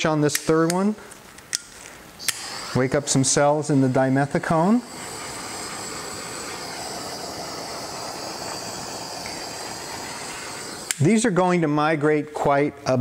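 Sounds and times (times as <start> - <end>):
torch flame hissing: 2.1 - 12.0.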